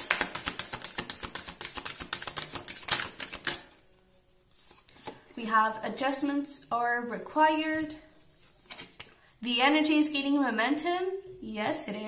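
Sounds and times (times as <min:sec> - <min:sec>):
cards being shuffled: 0:00.0 - 0:03.8, 0:04.6 - 0:05.2, 0:07.7 - 0:09.2.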